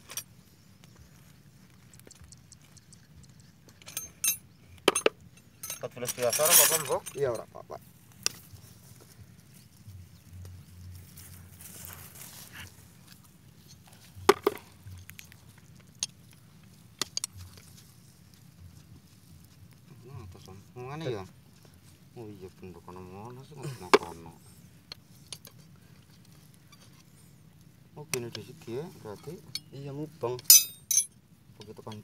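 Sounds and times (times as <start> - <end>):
low steady rumble: 0.0 - 32.0.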